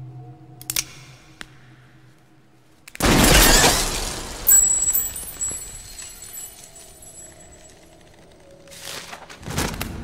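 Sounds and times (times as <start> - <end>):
high metallic ringing: 3.4 - 7.9.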